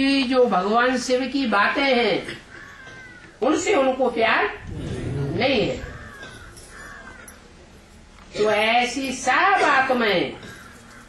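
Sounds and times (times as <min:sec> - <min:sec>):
low background noise: 0:00.0 - 0:11.0
faint bird calls: 0:04.6 - 0:07.4.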